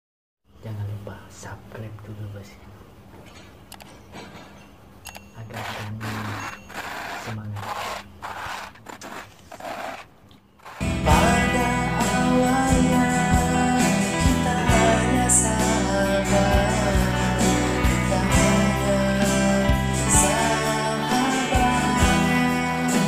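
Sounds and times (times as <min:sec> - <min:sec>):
guitar music with singing: 0:10.8 - 0:23.0.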